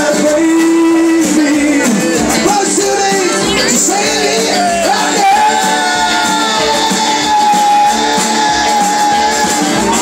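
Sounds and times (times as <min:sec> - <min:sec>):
live country-rock band playing: 0:00.0 - 0:10.0
strummed acoustic guitar: 0:00.0 - 0:10.0.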